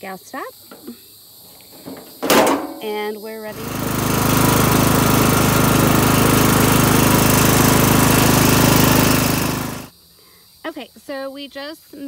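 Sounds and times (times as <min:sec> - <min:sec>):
lawn mower engine running: 0:01.7 - 0:09.9.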